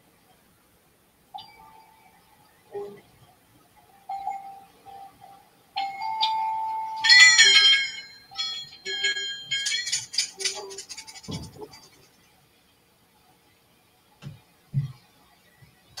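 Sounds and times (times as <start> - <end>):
wavering high pitched tones: 4.1 - 12.1
steady high tone: 5.9 - 12.1.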